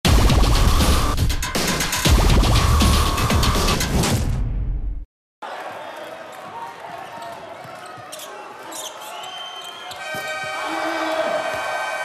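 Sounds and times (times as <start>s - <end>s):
crowd noise in sports hall: 5.4s - 12.0s.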